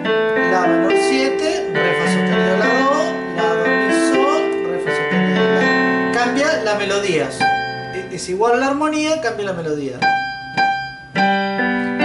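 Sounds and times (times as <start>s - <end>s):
digital piano melody over chords: 0.0s - 12.0s.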